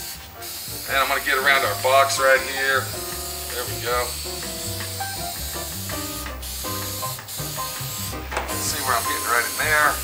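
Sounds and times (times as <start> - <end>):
aerosol spray hissing: 0.0 - 10.0.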